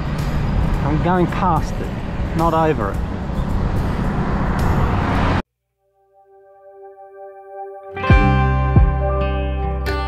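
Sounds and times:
bicycle road noise: 0.0 - 5.4
soft guitar music: 6.2 - 10.0.

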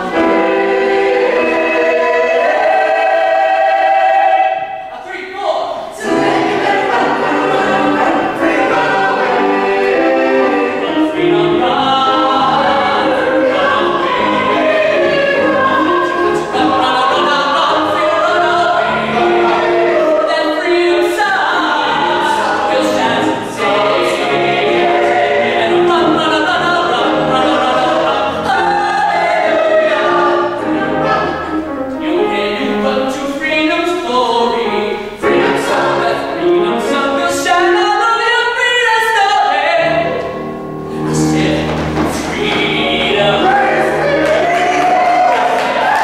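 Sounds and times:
ensemble singing gospel style: 0.0 - 46.0
grand piano: 0.0 - 46.0
male soloist singing: 5.7 - 31.3, 31.9 - 40.2, 40.9 - 46.0.

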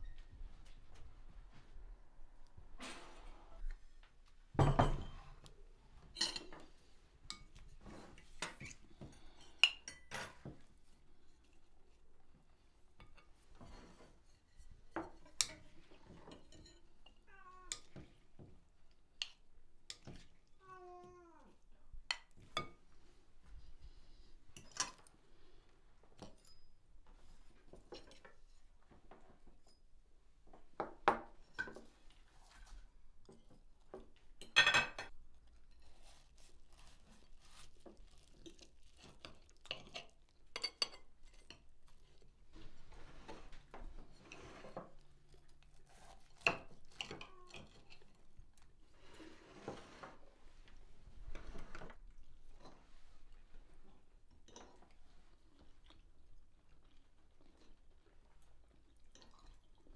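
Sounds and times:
cutlery clinking on plates: 4.6 - 5.4, 6.2 - 10.7, 34.4 - 35.2, 39.0 - 41.7
cutlery clatter: 6.1 - 10.7, 34.4 - 35.8, 39.0 - 41.7
cat meowing: 17.3 - 17.8, 20.6 - 21.6.

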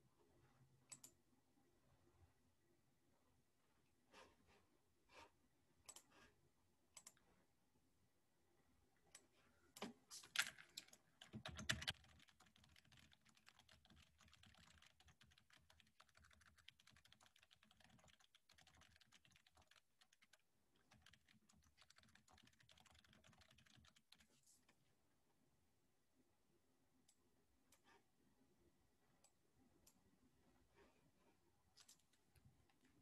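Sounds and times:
typing on computer keyboard: 9.8 - 24.4.

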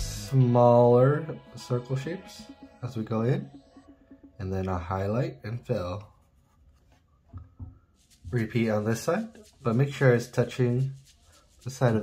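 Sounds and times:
marker scratching on paper: 8.0 - 12.0.

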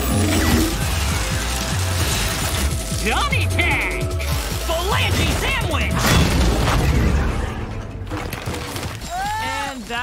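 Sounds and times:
action music with pulsing bass: 0.0 - 8.4.

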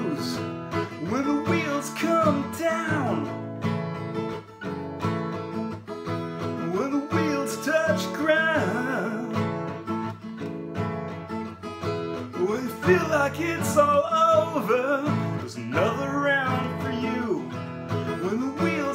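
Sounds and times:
man singing: 0.0 - 3.4, 6.5 - 9.9, 12.2 - 18.9
acoustic guitar strumming chords: 0.0 - 18.9.

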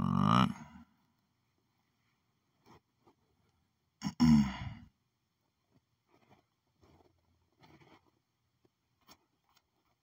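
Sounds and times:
man sighing: 4.0 - 4.9.

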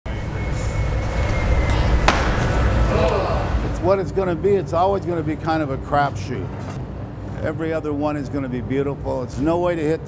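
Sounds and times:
thin high whine: 0.1 - 5.2
roar of gas furnaces and burners: 0.1 - 10.0.

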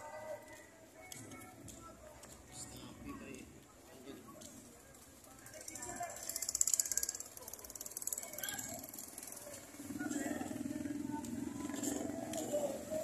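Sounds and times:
motorcycle traffic: 0.1 - 13.0
motorcycle engine running: 5.6 - 13.0.

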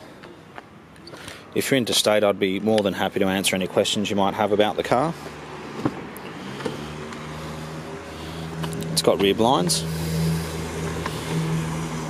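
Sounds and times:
car engine idling: 4.8 - 12.0.

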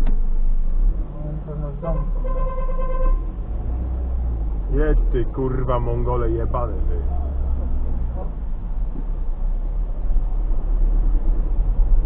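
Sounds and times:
traffic rumble: 0.0 - 12.0
car horn: 1.8 - 3.4.

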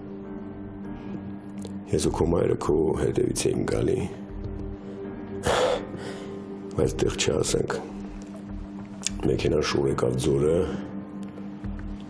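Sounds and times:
soft background music drone: 0.0 - 12.0.

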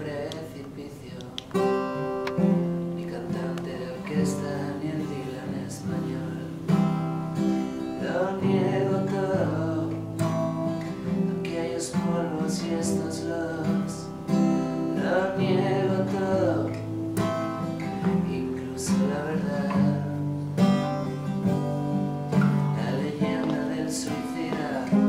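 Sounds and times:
acoustic guitar chords: 0.0 - 25.0
man singing: 0.0 - 25.0.

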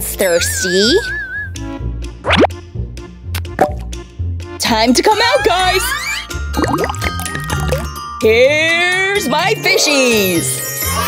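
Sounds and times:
light background music with beat: 0.8 - 10.9
cartoon bloop sound effect: 2.2 - 2.5, 6.0 - 7.9
short plop: 3.4 - 3.9.

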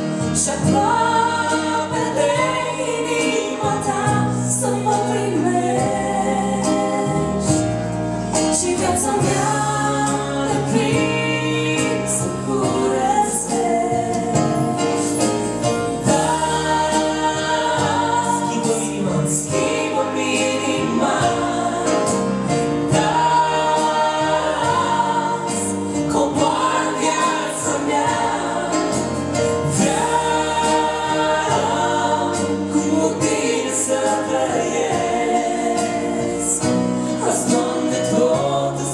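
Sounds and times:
woman and man singing duet: 0.0 - 7.7, 8.4 - 15.2, 16.0 - 29.0, 29.6 - 38.9.

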